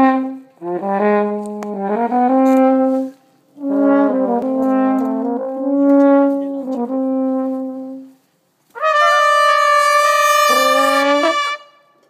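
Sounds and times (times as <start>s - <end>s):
brass ensemble holding a chord: 0.0s - 8.2s, 8.8s - 12.0s.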